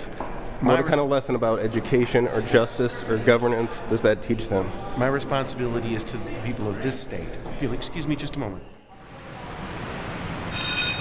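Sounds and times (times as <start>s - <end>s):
steady background noise: 0.0s - 11.0s
loud high ringing tone: 10.5s - 11.0s.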